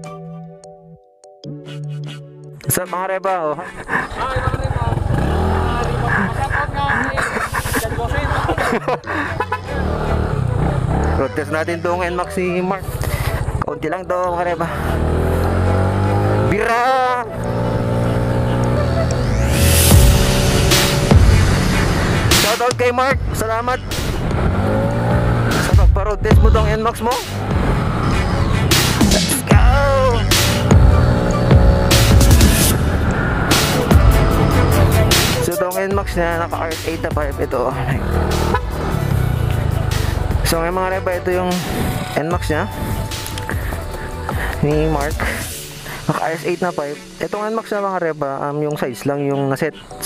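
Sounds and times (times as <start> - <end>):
background music: 0.0 - 50.0
scooter engine cruising: 4.0 - 11.5, 14.5 - 22.4, 24.0 - 25.8, 27.0 - 35.4, 37.2 - 40.9
person speaking: 34.6 - 38.1, 44.5 - 49.7.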